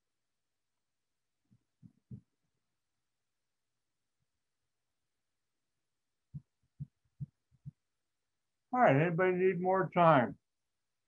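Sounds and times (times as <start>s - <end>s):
soft low thumps: 6.3s - 7.9s.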